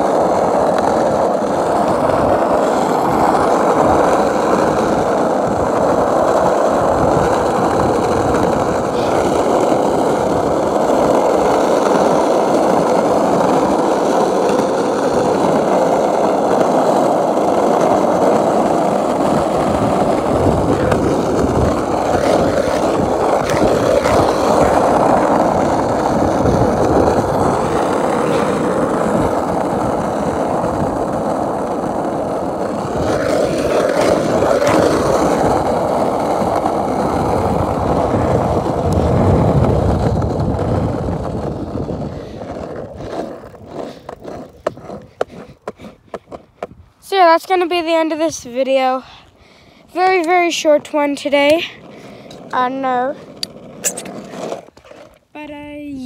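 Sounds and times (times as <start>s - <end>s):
wheels knocking over cracks: 0.0s - 46.9s
skateboard wheels rolling on asphalt: 0.0s - 56.0s.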